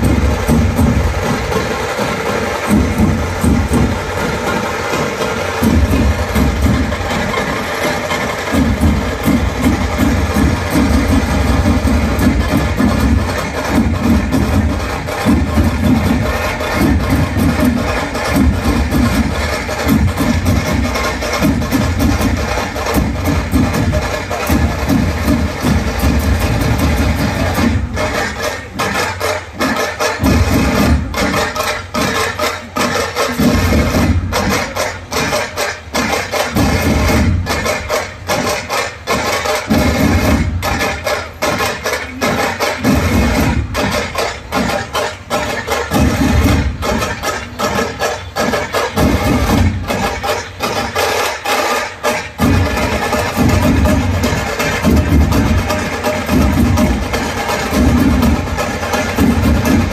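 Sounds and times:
dhol drums beating fast: 0.0s - 59.9s.

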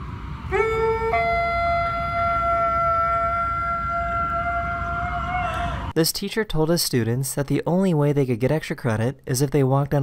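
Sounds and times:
dog howling: 0.5s - 5.9s.

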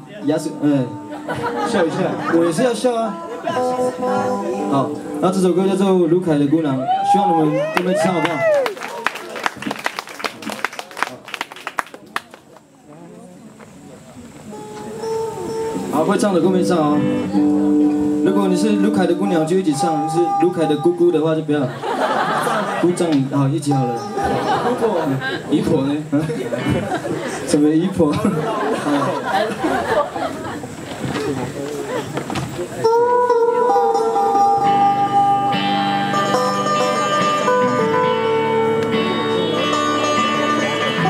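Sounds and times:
faint voices: 0.0s - 41.0s
laughter: 1.1s - 2.7s, 21.7s - 22.9s, 24.2s - 25.6s, 26.2s - 27.5s, 28.1s - 30.7s
scattered hand clapping: 7.8s - 13.0s.

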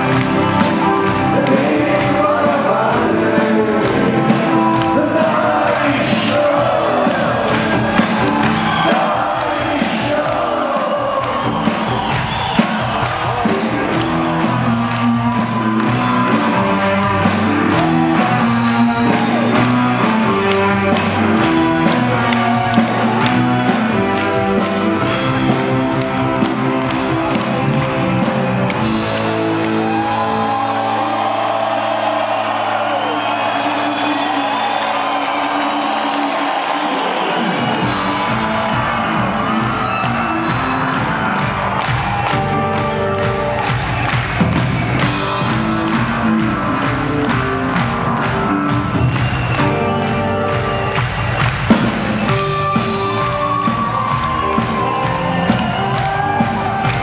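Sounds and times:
audience cheering and whooping: 0.0s - 57.0s
drums and bass: 0.0s - 57.0s
live rock band playing: 0.0s - 57.0s.

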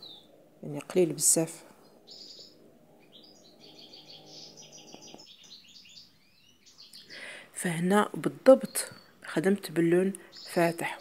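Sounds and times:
bird chirping: 0.0s - 11.0s
faint low hum: 0.0s - 11.0s.

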